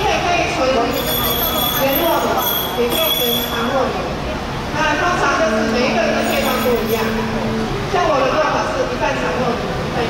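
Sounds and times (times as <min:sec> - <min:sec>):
crowd voices talking: 0:00.0 - 0:10.0.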